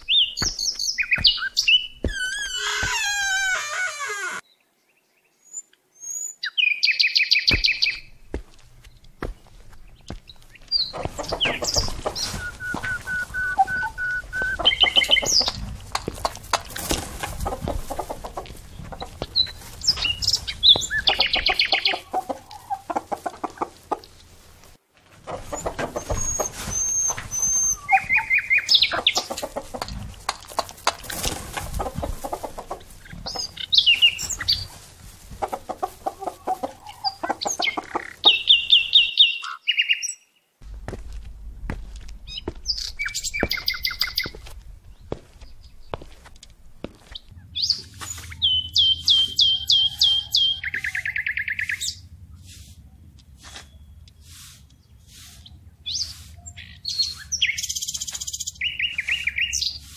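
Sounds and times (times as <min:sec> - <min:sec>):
chickens clucking: 0:07.5 - 0:39.1, 0:42.3 - 0:51.9.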